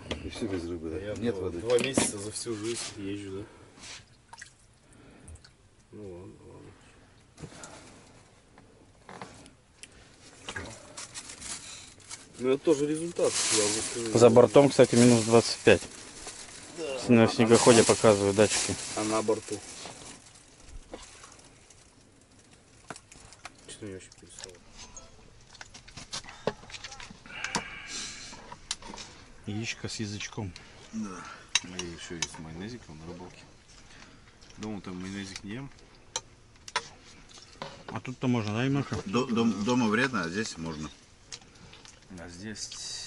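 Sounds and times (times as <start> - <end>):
faint rustling of clothing: 0.0 - 36.0
rustling hiss: 9.1 - 23.6.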